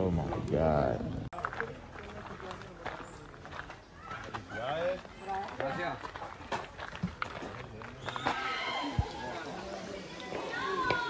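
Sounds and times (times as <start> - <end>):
people talking and laughing: 0.0 - 11.0
footsteps on sandy path: 1.3 - 11.0.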